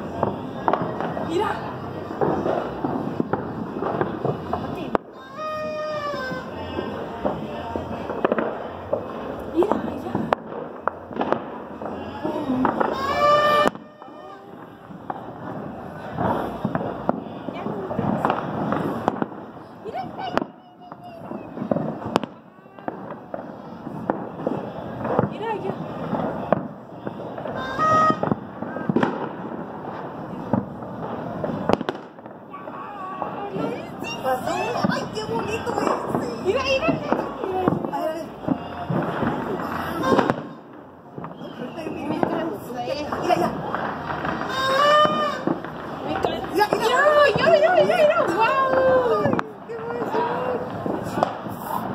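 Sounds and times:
fireworks and firecrackers banging: 0.0s - 51.9s.

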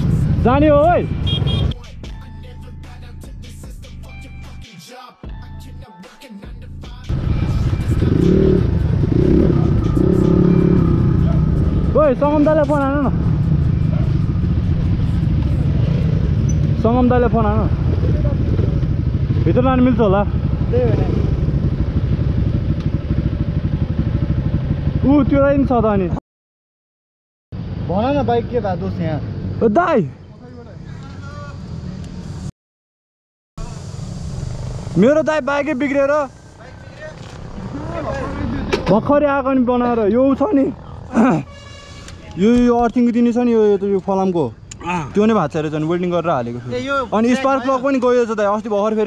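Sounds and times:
dirt bike engine rumbling: 7.1s - 26.2s, 33.6s - 49.0s.

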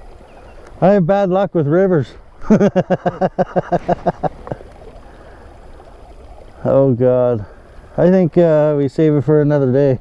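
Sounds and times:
creek running over rocks: 0.0s - 10.0s
man laughing: 2.4s - 4.7s.

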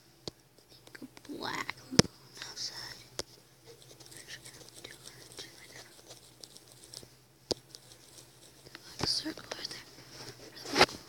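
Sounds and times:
steady low hum: 0.0s - 11.0s
faint whispering: 0.7s - 3.1s, 3.8s - 6.1s, 8.7s - 10.9s.

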